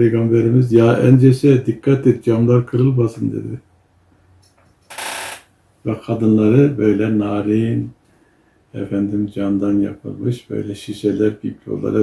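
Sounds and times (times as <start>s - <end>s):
man speaking: 0.0s - 3.6s, 5.8s - 8.0s, 8.8s - 12.0s.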